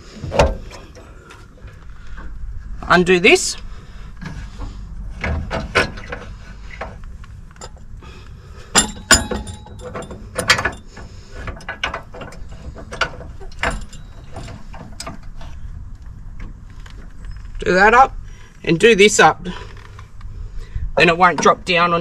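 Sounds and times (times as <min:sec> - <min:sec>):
metal clicks and clunks: 0:00.2 - 0:02.4, 0:04.2 - 0:08.0, 0:08.6 - 0:17.6.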